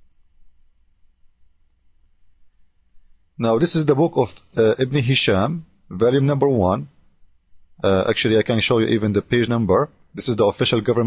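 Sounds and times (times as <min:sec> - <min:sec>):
computer mouse clicks: 0:00.0 - 0:00.5, 0:01.7 - 0:02.7
low steady hum: 0:00.0 - 0:11.0.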